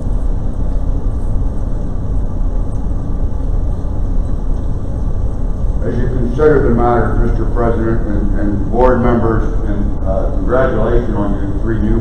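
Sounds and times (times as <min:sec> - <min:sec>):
auditorium room noise rumble: 0:00.0 - 0:12.0.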